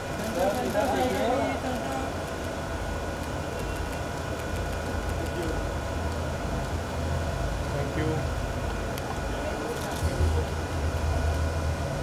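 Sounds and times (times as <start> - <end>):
crowd murmur: 0.0 - 2.8, 9.0 - 11.8.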